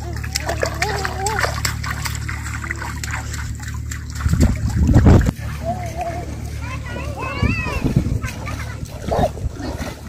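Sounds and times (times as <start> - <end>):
bare feet splashing in water: 0.0 - 10.0.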